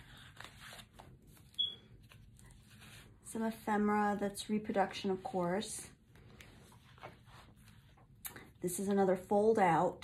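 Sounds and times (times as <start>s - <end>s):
paper rustling and sliding: 0.0s - 3.6s, 6.1s - 8.1s.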